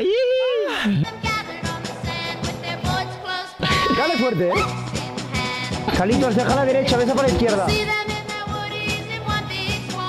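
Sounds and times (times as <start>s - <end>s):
background music: 0.0s - 10.0s
person shouting excitedly: 3.7s - 4.8s.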